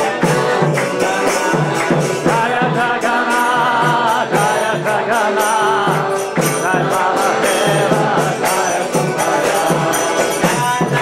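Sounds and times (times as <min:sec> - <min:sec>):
jingling percussion: 0:00.0 - 0:11.0
steady drum beat: 0:00.0 - 0:11.0
voices singing a chanted mantra: 0:00.0 - 0:11.0.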